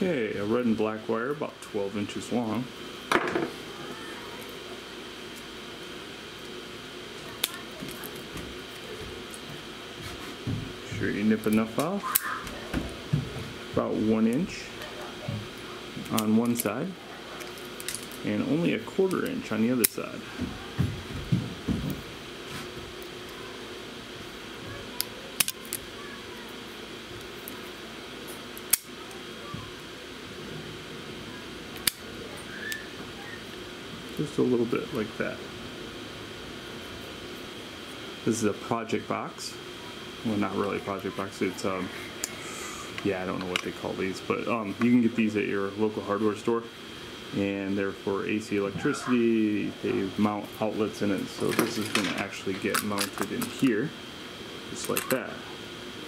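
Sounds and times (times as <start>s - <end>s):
steady background hum: 0.0s - 56.0s
wire stripper click: 25.0s - 25.8s, 31.8s - 32.0s.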